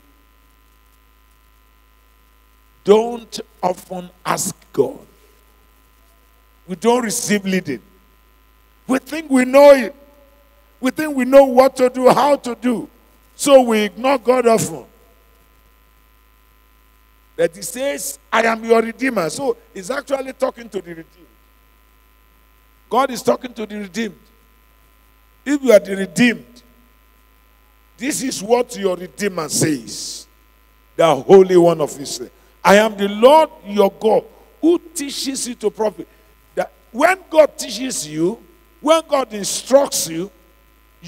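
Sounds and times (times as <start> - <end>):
faint electrical mains hum: 0.0 - 41.0
thin constant tones: 0.0 - 41.0
man speaking: 2.8 - 5.2, 6.7 - 7.8, 8.9 - 10.1, 10.8 - 15.0, 17.4 - 21.2, 22.9 - 24.3, 25.5 - 26.7, 28.0 - 30.3, 31.0 - 40.4
man's voice: 2.8 - 5.2, 6.7 - 7.8, 8.9 - 10.0, 10.8 - 14.9, 17.4 - 21.2, 22.9 - 24.3, 25.5 - 26.6, 28.0 - 30.3, 31.0 - 40.4.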